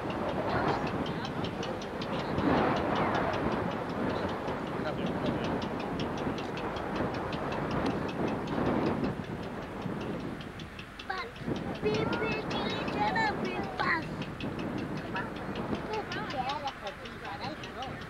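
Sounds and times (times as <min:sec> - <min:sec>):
fast regular ticking: 0:00.0 - 0:18.0
propeller engines droning: 0:00.0 - 0:18.0.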